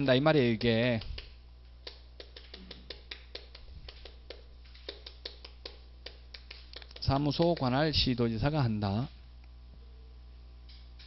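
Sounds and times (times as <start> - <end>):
faint steady hum: 0.0 - 11.0
chalk tapping on chalkboard: 0.9 - 7.9.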